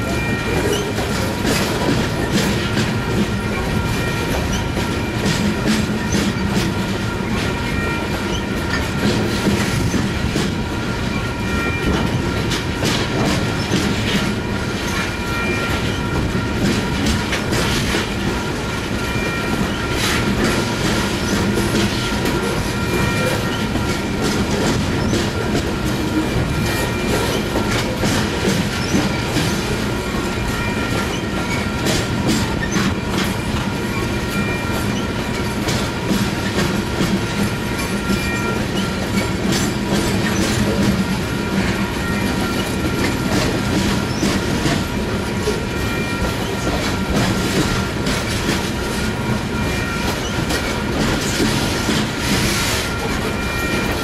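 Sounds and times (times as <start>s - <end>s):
train cars rumbling past: 0.0s - 54.0s.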